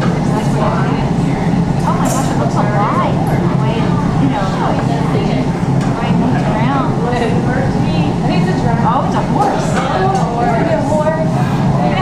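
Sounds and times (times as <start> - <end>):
people talking: 0.0 - 12.0.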